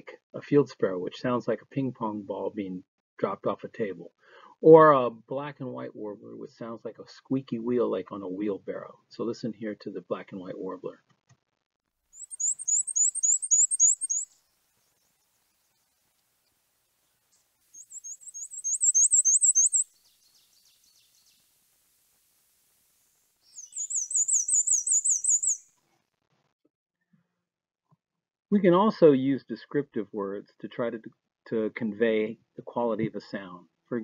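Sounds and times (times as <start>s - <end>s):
warbler singing high thin notes: 12.2s - 16.1s, 17.2s - 25.7s.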